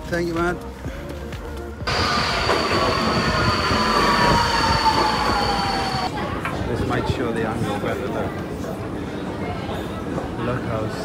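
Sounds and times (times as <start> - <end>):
steady high whine: 1.8 - 6.1
metro train wheel noise: 1.8 - 6.9
falling whine: 1.9 - 6.1.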